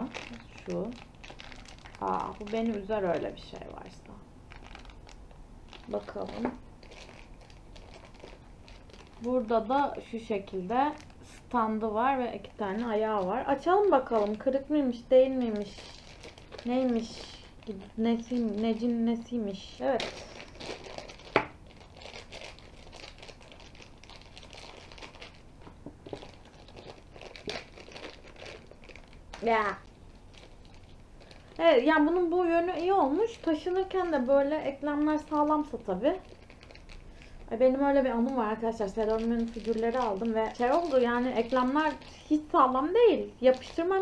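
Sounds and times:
plastic bag crinkling: 0.0 - 44.0.

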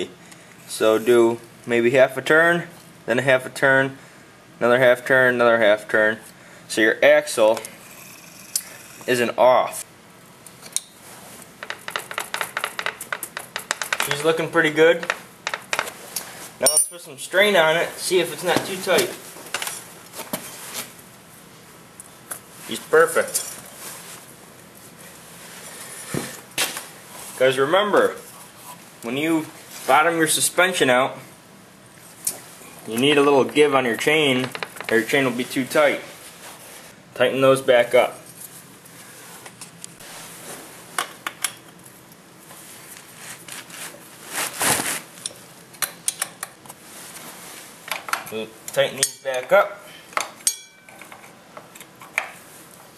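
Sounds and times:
wrench clinking on bolts: 16.6 - 17.1.

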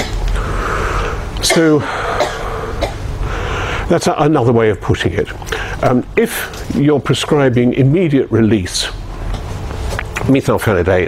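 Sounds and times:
room noise hum: 0.0 - 11.0
person coughing: 1.4 - 3.1.

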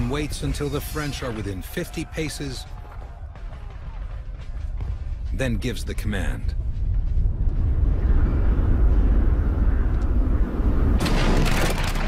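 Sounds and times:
deep loud rumble: 6.6 - 11.9.

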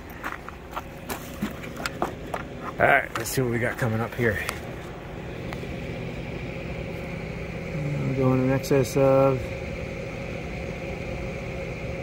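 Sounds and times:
electric fans humming: 0.0 - 12.0
faint high whine: 0.0 - 12.0.

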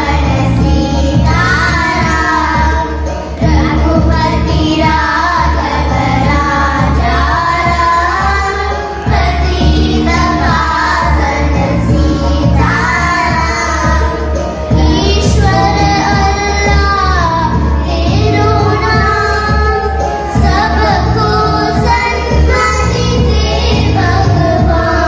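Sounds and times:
accompanying music with low pulse: 0.0 - 25.0
children singing into microphones: 0.0 - 25.0.

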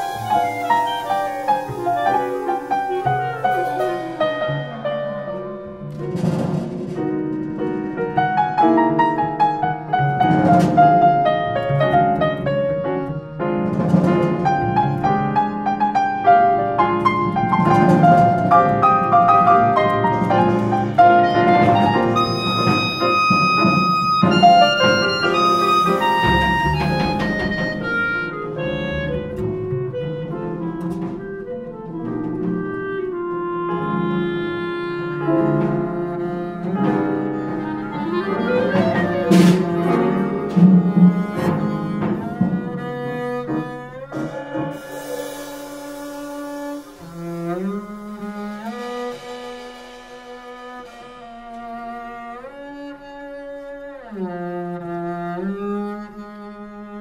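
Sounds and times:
clarinet: 0.0 - 6.1, 7.6 - 57.0
double bass: 0.0 - 57.0
piano: 0.0 - 57.0
drums: 6.0 - 8.9, 13.5 - 33.2, 35.3 - 43.4, 44.9 - 52.4.

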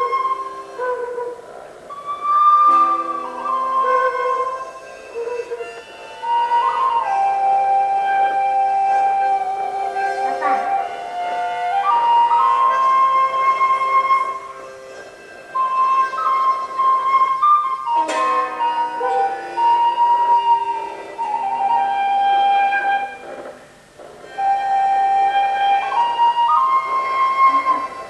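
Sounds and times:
slow flute-like melody: 0.0 - 28.0.

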